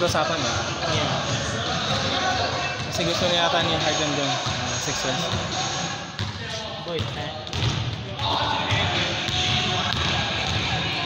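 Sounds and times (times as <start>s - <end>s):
players' voices and shouts: 0.0s - 11.0s.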